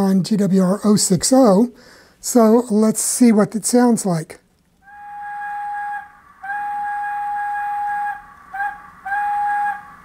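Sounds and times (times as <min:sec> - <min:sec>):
model steam whistle: 0:04.8 - 0:10.0.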